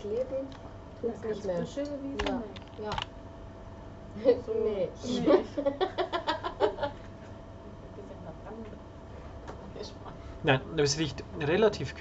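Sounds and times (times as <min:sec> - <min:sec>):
woman laughing: 0:05.0 - 0:07.0.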